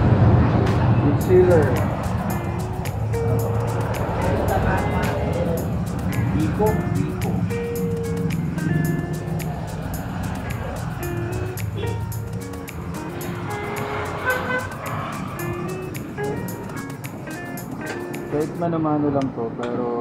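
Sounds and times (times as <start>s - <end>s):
background music with steady beat: 0.6s - 19.2s.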